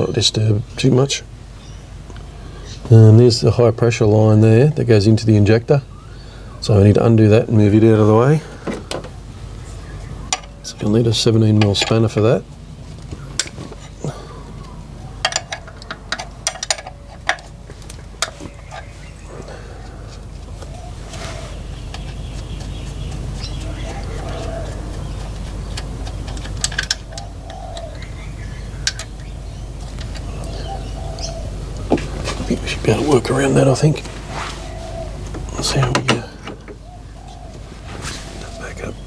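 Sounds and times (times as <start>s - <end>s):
steady low rumble: 0.0s - 39.0s
spanner metallic clicks: 15.2s - 17.5s, 25.4s - 28.0s, 28.8s - 30.6s.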